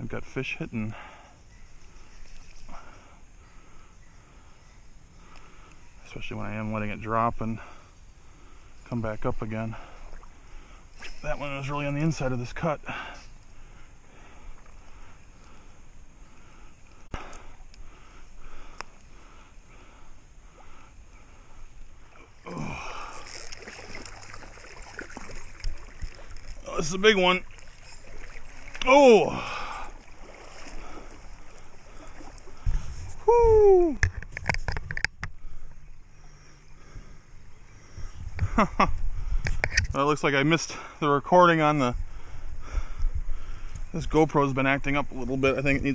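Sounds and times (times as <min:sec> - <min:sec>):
creek water running: 0:00.0 - 0:45.9
fish thrashing in landing net: 0:23.0 - 0:26.6.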